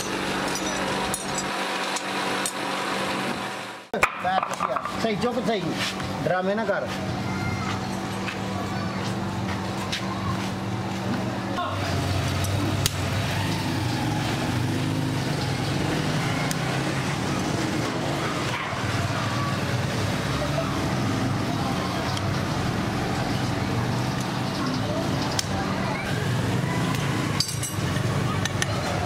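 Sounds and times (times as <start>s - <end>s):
vehicle engine running: 6.9s - 29.0s.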